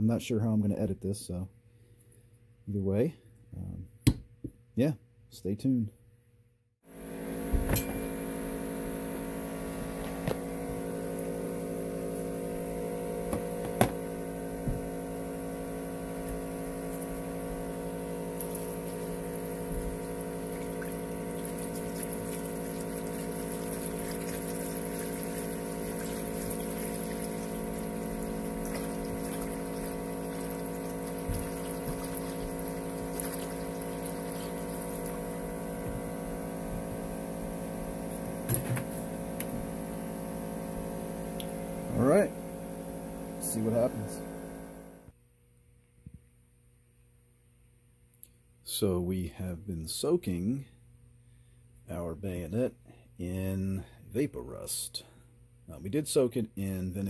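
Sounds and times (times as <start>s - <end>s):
steady hum: 6.9s - 45.2s
liquid pouring into plastic tub: 18.3s - 36.2s.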